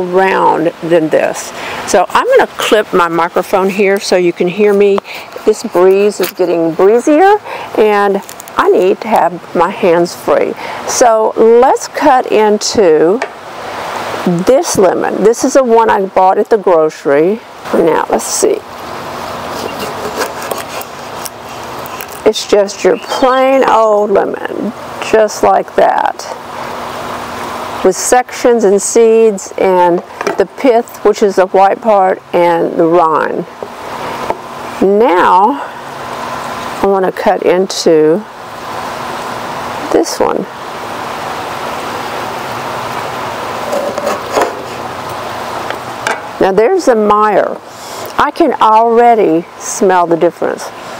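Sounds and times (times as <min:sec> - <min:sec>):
breeze hiss on microphone: 0:00.0 - 0:45.6
small clicks and scrapes: 0:19.5 - 0:22.3, 0:43.6 - 0:44.8.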